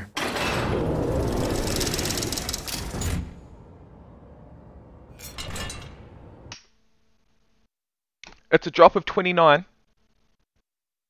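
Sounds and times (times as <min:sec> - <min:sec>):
mechanical rumble: 0:00.2 - 0:06.6
fast ticking rattle: 0:01.1 - 0:02.9.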